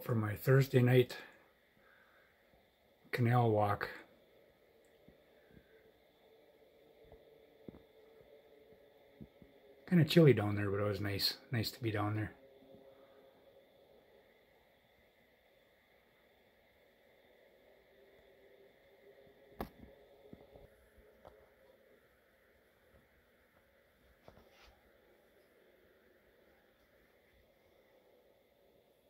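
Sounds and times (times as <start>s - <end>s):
steady hum: 0.0s - 29.0s.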